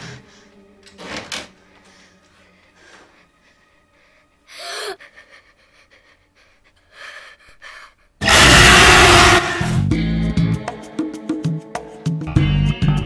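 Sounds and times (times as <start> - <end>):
music: 0.0 - 13.0
loud burst of noise: 8.2 - 9.8.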